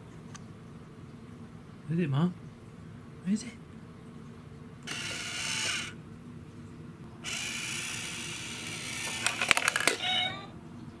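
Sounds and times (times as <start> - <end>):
small motor whirring: 4.8 - 6.0, 7.2 - 10.2
sharp clicks: 7.3 - 10.0.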